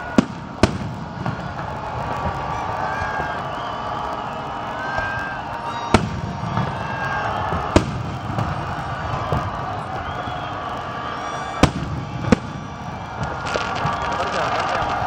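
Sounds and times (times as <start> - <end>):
fireworks bangs: 0.0 - 15.0.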